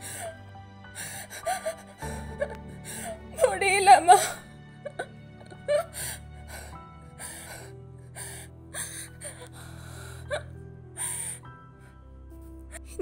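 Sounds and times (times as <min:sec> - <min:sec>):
woman sobbing and gasping: 0:00.0 - 0:11.4
low music drone: 0:00.0 - 0:13.0.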